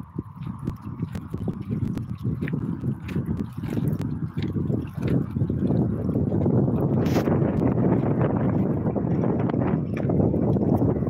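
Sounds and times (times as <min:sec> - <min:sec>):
low rumble: 0:00.0 - 0:11.0
waves washing against rocks: 0:00.7 - 0:09.2.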